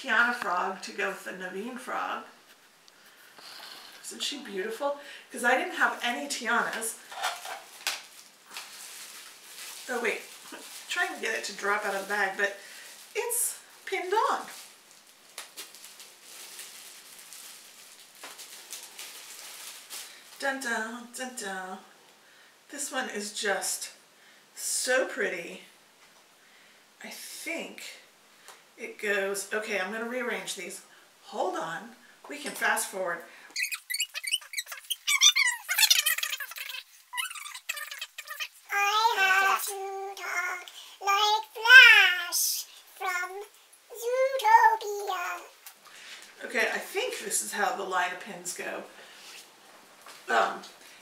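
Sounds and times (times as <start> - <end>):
plastic bag crinkling: 7.0 - 20.4, 33.6 - 43.6.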